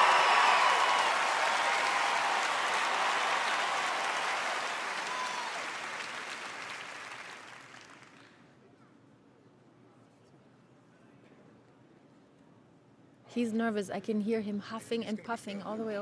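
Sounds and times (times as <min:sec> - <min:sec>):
audience applauding: 0:00.0 - 0:08.4.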